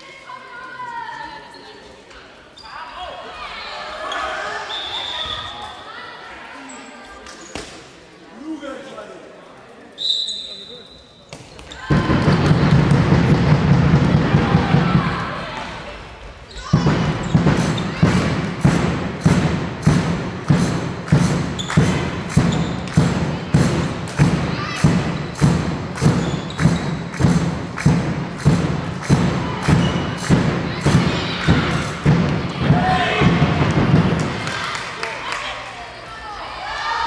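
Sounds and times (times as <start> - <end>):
drum thumping in hall: 11.8 - 15.8, 16.6 - 34.7.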